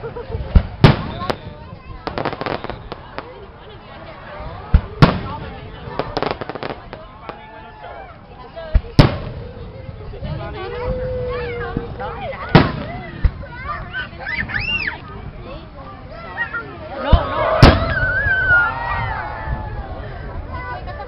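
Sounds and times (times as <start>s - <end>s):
crackling pops: 0.5s - 3.4s, 4.7s - 7.4s
firework shells bursting: 4.7s - 7.4s.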